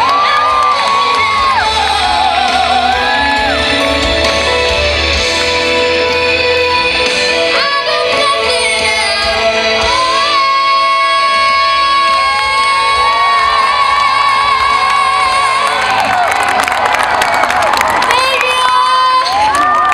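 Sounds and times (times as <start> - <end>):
crowd clapping: 0.0 - 4.5, 12.9 - 19.9
band playing: 0.0 - 19.8
crowd screaming and cheering: 0.0 - 19.9.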